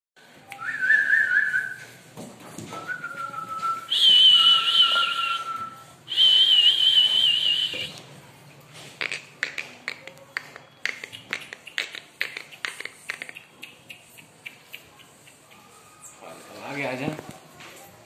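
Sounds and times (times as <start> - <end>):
person whistling: 0.5 - 1.8, 2.8 - 7.9.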